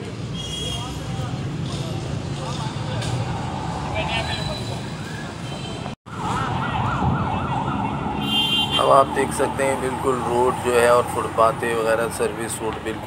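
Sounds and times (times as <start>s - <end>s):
street crowd murmur: 0.0s - 8.1s
traffic: 0.0s - 13.0s
vehicle siren: 6.1s - 12.3s.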